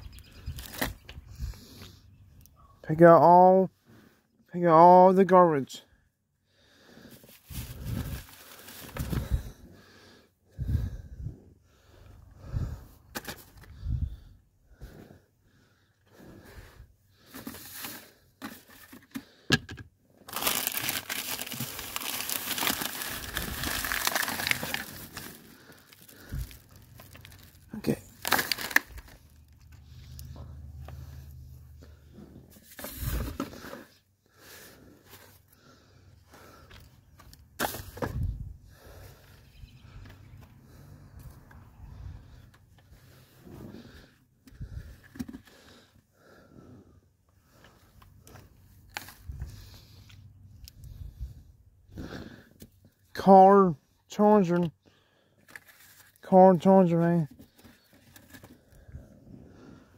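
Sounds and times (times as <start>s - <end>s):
plastic bags and trash crinkling: 7.2s - 9.4s, 20.2s - 29.8s.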